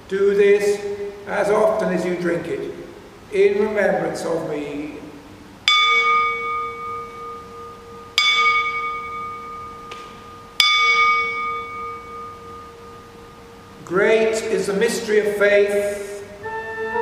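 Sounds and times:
small altar bell ringing: 5.6s - 14.5s.

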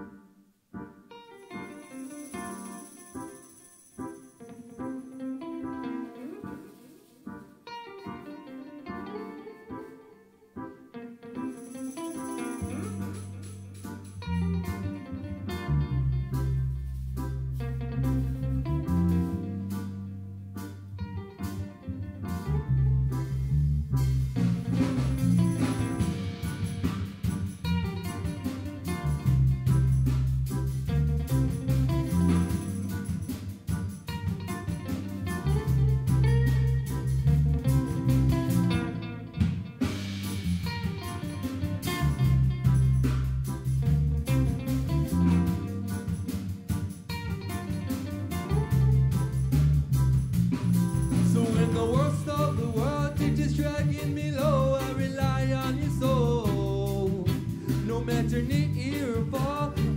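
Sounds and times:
electric guitar: 0.0s - 59.9s
keyboard: 0.0s - 59.9s
drum kit: 11.4s - 59.9s
electric bass: 12.5s - 59.9s.

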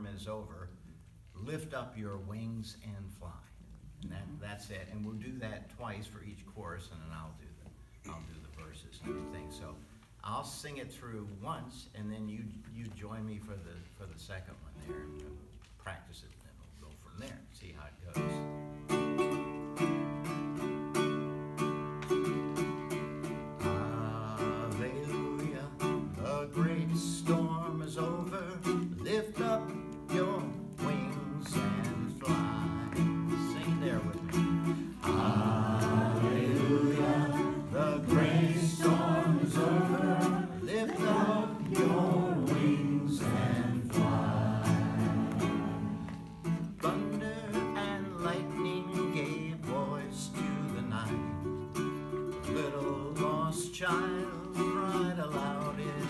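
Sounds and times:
ukulele strumming chords: 18.2s - 56.0s
man singing: 23.6s - 51.6s, 52.3s - 56.0s.

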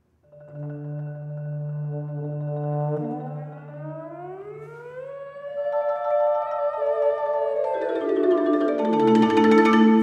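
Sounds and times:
held low note: 0.3s - 7.3s
euphonium upward glissando: 0.4s - 10.0s.

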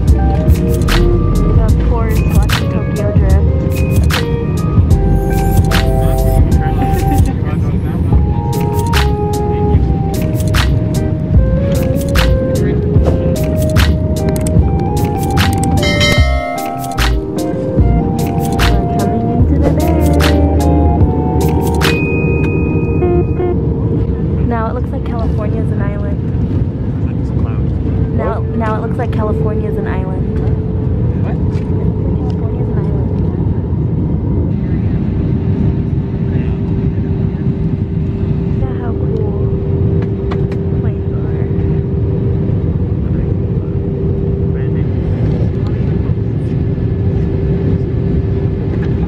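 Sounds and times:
airliner cabin noise: 0.0s - 49.0s
faint voices: 4.2s - 15.1s, 27.0s - 49.0s.

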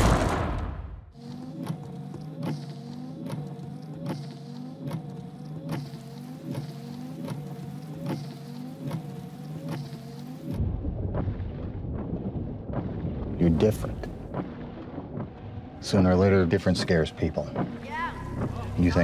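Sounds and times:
car engine running: 1.1s - 19.0s
windscreen wipers ticking and squeaking: 1.2s - 10.6s, 12.8s - 19.0s
deep rumble: 10.5s - 19.0s.

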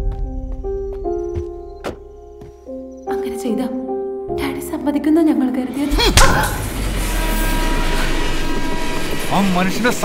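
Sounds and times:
train rushing and rumbling: 5.7s - 10.0s.

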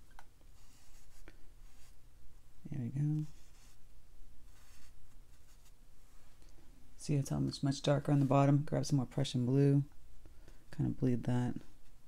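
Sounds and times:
low steady hum: 0.0s - 12.0s
brush strokes on paper: 0.5s - 2.0s, 3.0s - 6.4s.

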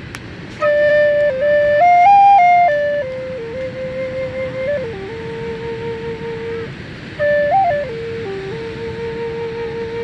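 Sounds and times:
wooden flute slow melody: 0.5s - 10.0s.

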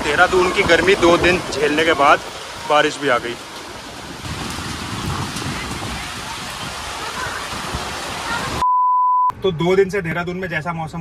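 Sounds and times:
heavy rain falling: 0.0s - 8.6s.

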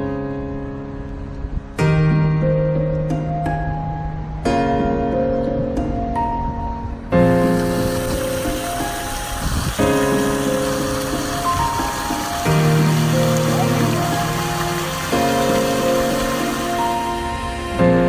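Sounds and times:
slow background music: 0.0s - 18.0s
fountain water splashing: 7.3s - 17.7s.

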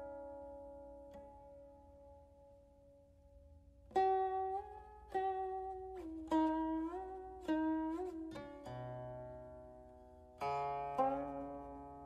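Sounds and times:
plucked string notes bending: 3.9s - 12.0s.

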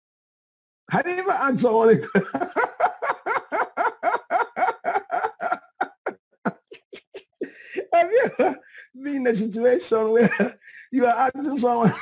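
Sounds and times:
man laughing heartily: 1.8s - 9.3s, 10.0s - 12.0s.

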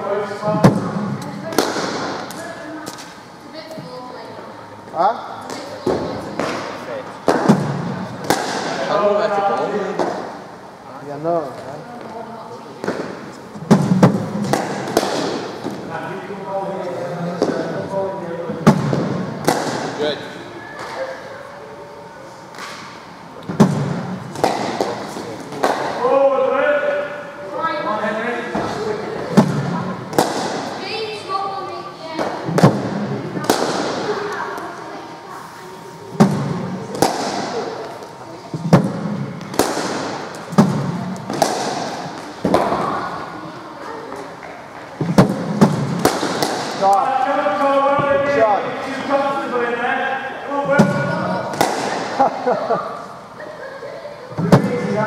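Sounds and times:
cricket balls hitting bat: 13.7s - 15.7s, 23.5s - 26.0s, 45.0s - 46.8s, 50.8s - 52.2s.

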